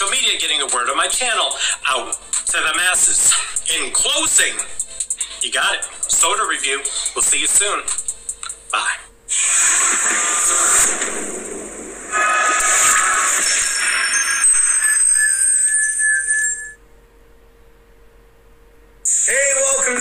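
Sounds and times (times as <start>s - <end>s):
faint steady hum: 0.0s - 14.0s, 16.2s - 20.0s
jingle of high held tones: 13.2s - 16.8s.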